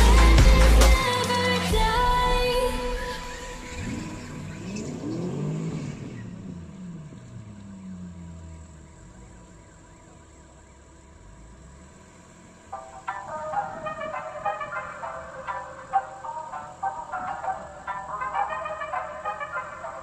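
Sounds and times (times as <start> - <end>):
music: 0.0 - 4.1, 12.8 - 20.0
car engine revving: 0.0 - 20.0.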